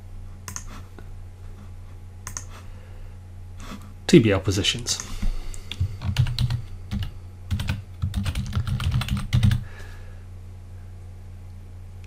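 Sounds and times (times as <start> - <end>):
steady low hum: 0.0 - 12.0
computer keyboard typing: 0.5 - 0.7, 2.2 - 2.5, 5.0 - 9.6.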